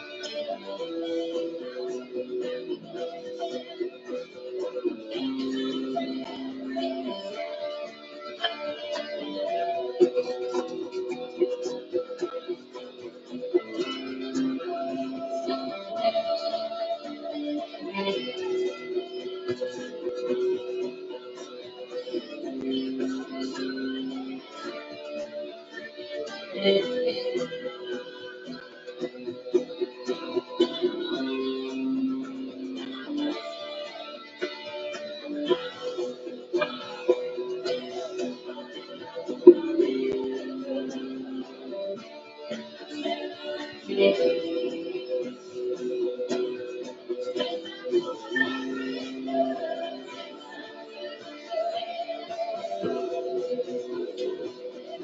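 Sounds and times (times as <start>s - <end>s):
guitar playing: 0.0s - 55.0s.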